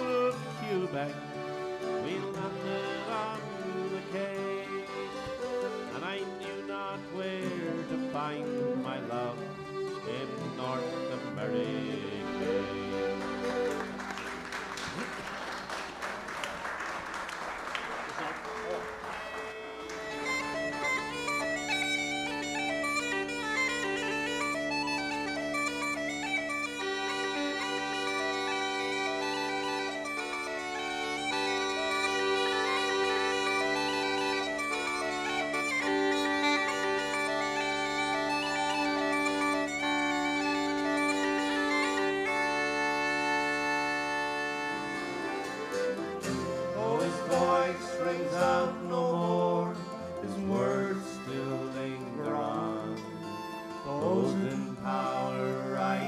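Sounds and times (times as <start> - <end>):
bagpipes playing: 0.0 - 15.1, 19.0 - 56.0
applause: 13.2 - 20.8.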